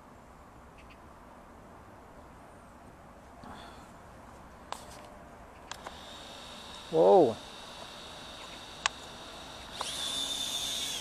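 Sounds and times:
toy drone propellers whining: 0:05.7 - 0:11.0.

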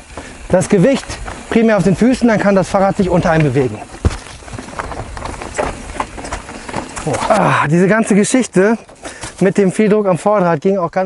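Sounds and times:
bike clattering over rocks: 0:00.0 - 0:09.9
bike tyres rumbling over stone: 0:00.0 - 0:10.3.

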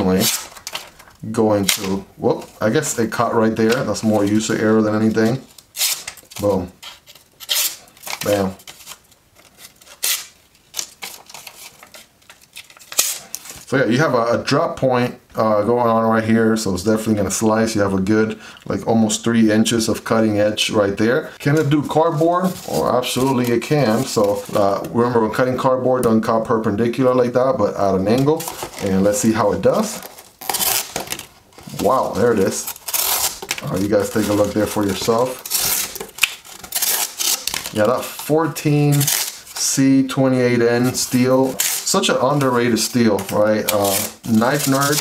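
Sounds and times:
paper rustling: 0:00.0 - 0:13.7, 0:21.4 - 0:25.2, 0:28.0 - 0:45.0.

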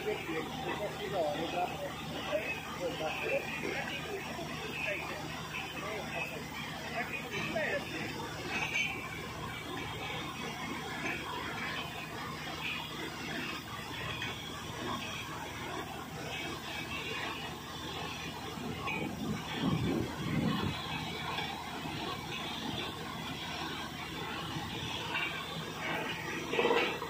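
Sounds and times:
drilling rig running: 0:00.0 - 0:27.0.

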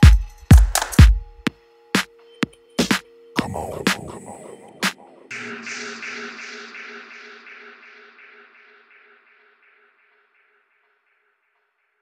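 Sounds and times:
low held tone: 0:03.4 - 0:05.6.

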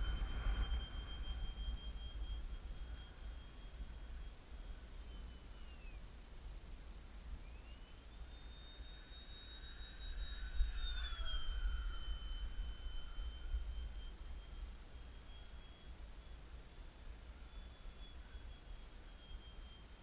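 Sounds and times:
wind buffeting microphone: 0:00.0 - 0:04.1
electric ducted fan whining: 0:00.0 - 0:20.0.

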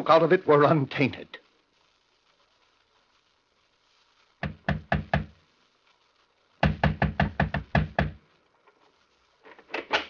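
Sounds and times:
knocking on a door: 0:04.4 - 0:05.3, 0:06.6 - 0:08.2.

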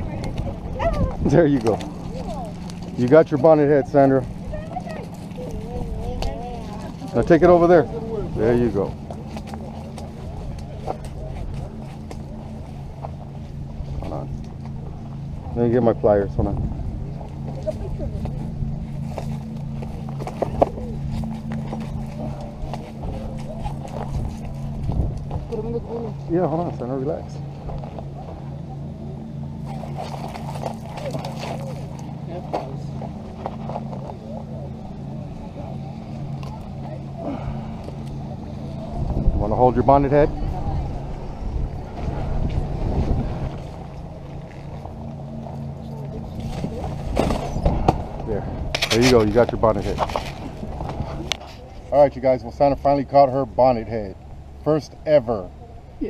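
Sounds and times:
rumbling noise: 0:00.0 - 0:52.6
low motor hum: 0:00.0 - 0:56.0
footsteps on rocky gravel: 0:29.6 - 0:34.6.

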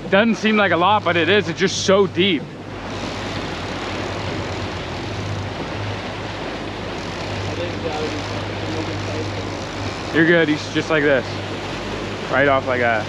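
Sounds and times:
outboard motors droning: 0:00.0 - 0:13.0
water rushing from wake: 0:00.0 - 0:13.0
wind: 0:00.0 - 0:13.0.

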